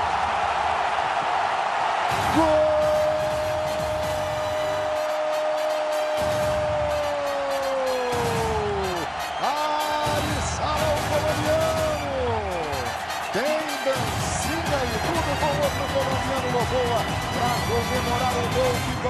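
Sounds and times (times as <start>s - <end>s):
stadium crowd cheering: 0.0s - 19.0s
commentator shouting goal cry: 2.2s - 5.7s, 6.6s - 19.0s.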